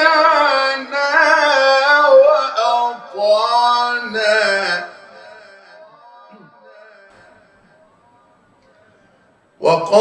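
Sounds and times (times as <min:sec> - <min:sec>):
echo of man chanting: 0:00.0 - 0:10.0.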